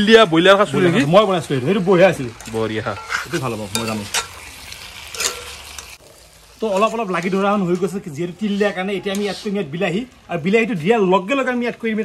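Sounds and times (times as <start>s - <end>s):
light sizzle of frying: 0.0s - 12.0s
metal spoon scraping wok: 2.4s - 6.0s.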